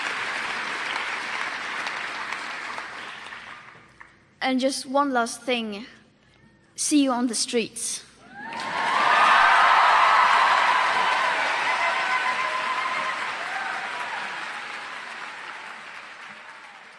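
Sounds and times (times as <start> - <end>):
audience applauding and cheering: 0.0 - 4.1, 8.3 - 16.9.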